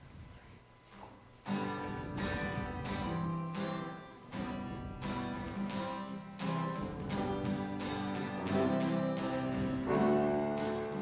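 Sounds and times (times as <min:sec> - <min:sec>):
acoustic guitar strumming: 0:01.4 - 0:11.0.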